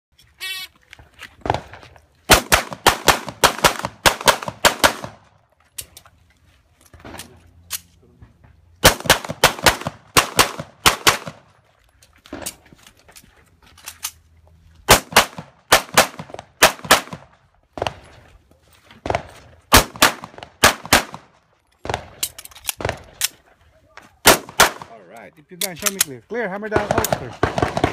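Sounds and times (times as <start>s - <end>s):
pistol shots in rapid strings: 26.8s - 27.9s.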